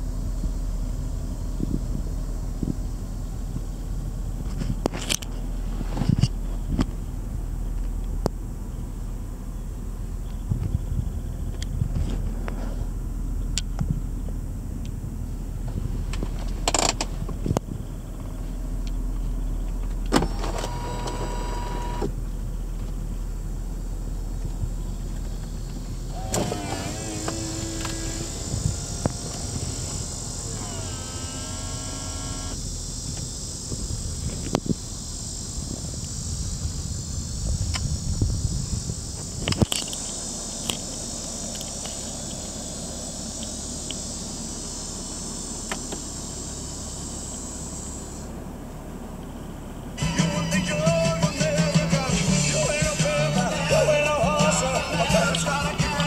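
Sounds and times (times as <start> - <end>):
car engine idling: 0.0 - 56.0
insect chorus: 0.0 - 56.0
hissy rustle: 2.6 - 8.0
electric motor whirr: 20.1 - 22.1, 26.1 - 32.6.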